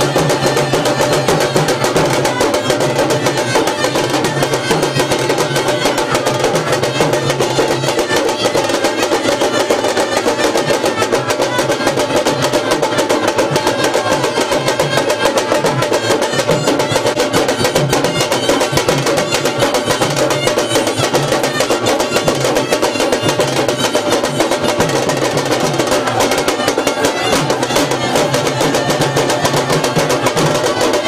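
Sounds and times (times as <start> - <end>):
drum band beating fast rhythm: 0.0 - 31.0.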